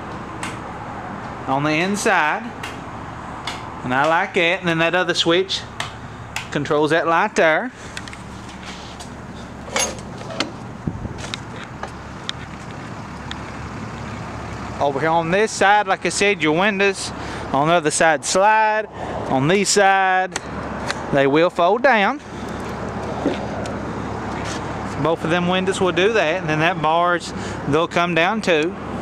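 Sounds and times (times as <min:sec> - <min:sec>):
steady low hum: 0:00.0 - 0:15.2
steady background noise: 0:00.0 - 0:29.0
footsteps on concrete: 0:07.9 - 0:13.0, 0:22.6 - 0:25.0.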